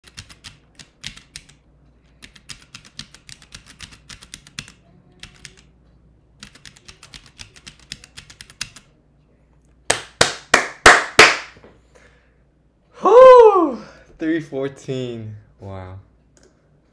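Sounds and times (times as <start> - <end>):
stenography keyboard keys clacking: 0.0 - 1.6, 6.4 - 8.9.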